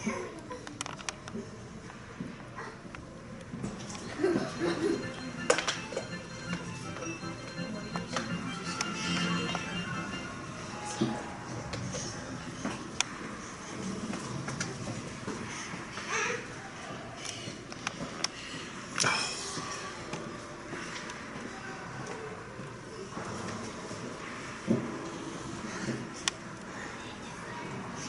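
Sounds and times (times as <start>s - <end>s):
low murmur of arena: 0.0s - 28.0s.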